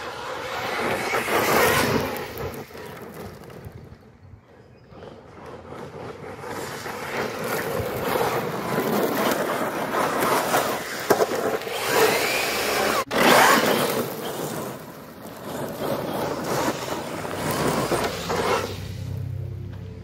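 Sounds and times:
tyres scraping through gravel: 0:00.0 - 0:19.4.

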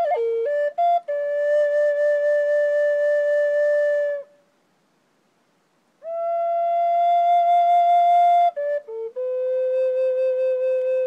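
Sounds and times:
flute holding long notes: 0:00.0 - 0:04.4, 0:06.0 - 0:11.0.

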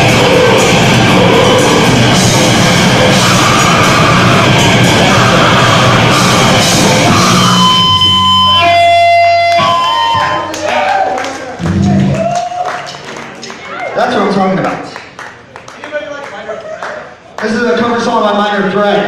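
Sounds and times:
steady high tones: 0:00.0 - 0:10.5
grindcore band playing: 0:00.0 - 0:10.7, 0:11.6 - 0:12.4.

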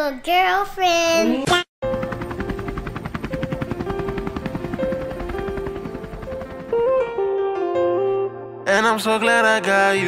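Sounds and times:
helicopter rotor beating: 0:01.8 - 0:07.4.

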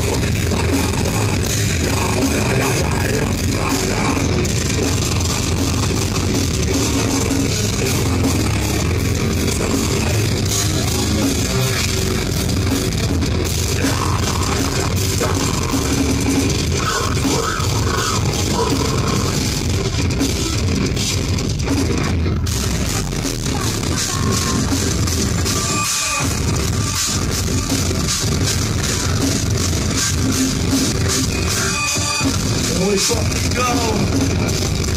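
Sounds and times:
drum kit: 0:00.0 - 0:34.9
electric guitars: 0:00.0 - 0:34.9
heavy rock band playing live: 0:00.0 - 0:34.9.

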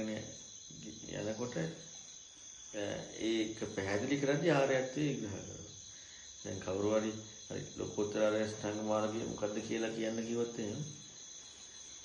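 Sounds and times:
man speaking: 0:00.0 - 0:01.9, 0:02.8 - 0:05.7, 0:06.4 - 0:11.0.

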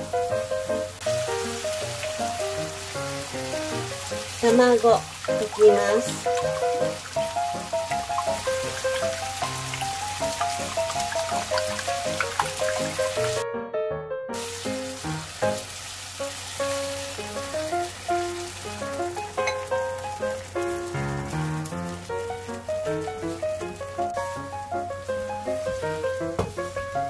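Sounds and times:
egg sizzling in frying pan: 0:00.0 - 0:13.4, 0:14.4 - 0:27.0
light melodic background music: 0:00.0 - 0:13.4, 0:16.6 - 0:27.0.

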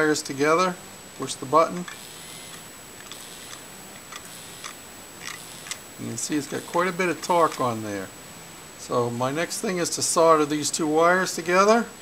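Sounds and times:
small electric motor running: 0:01.9 - 0:08.0.

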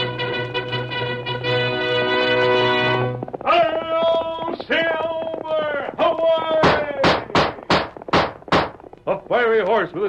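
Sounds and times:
horse hoofbeats clopping: 0:00.0 - 0:10.0.

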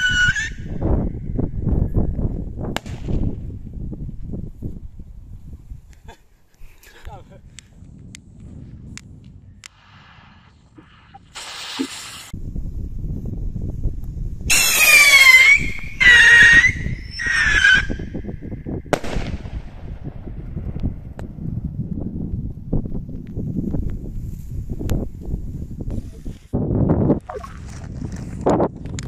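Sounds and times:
firework bang: 0:02.8 - 0:03.4, 0:18.9 - 0:20.2
firework rocket fizzing hiss: 0:09.7 - 0:12.4, 0:14.5 - 0:16.1
shrill whistle falling in pitch: 0:14.5 - 0:18.0.

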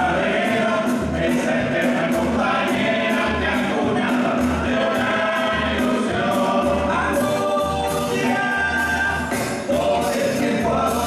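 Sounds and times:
bass drum beating: 0:00.0 - 0:11.0
choir singing: 0:00.0 - 0:11.0
snare drum strokes: 0:00.0 - 0:11.0.

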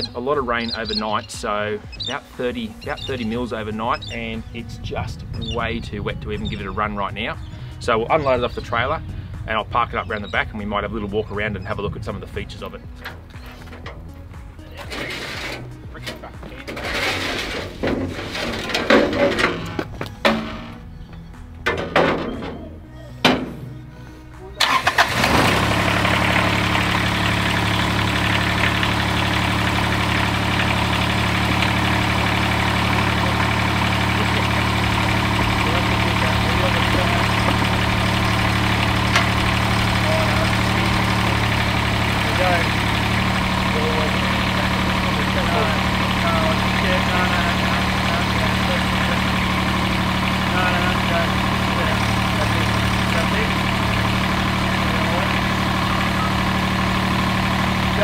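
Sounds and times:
diesel mower engine idling: 0:00.0 - 0:58.0
metal ramps clanking: 0:12.9 - 0:23.7, 0:24.6 - 0:57.8.

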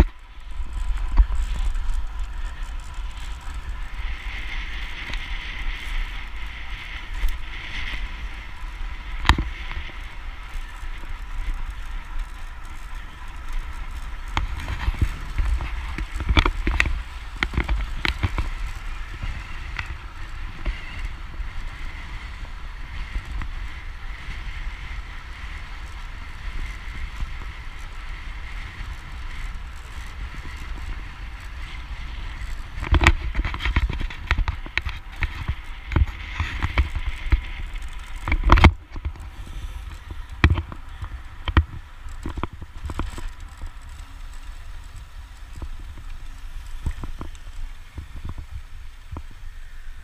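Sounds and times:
bike tyre noise on road: 0:00.0 - 0:50.0
wind rushing over microphone: 0:00.0 - 0:50.0.

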